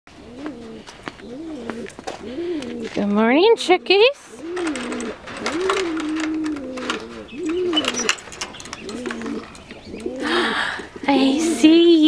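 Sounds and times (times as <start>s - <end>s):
pigeon cooing: 0.1s - 11.7s.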